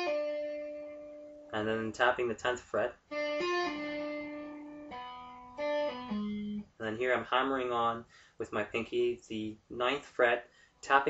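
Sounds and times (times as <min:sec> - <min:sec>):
electric guitar tapping: 0:03.1 - 0:06.7.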